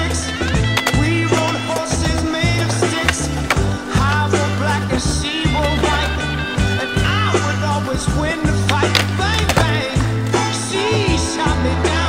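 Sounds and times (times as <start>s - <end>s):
rock song with bass and guitar: 0.0s - 12.0s
skateboard clacks: 0.0s - 12.0s
skateboard rolling on concrete: 0.0s - 12.0s.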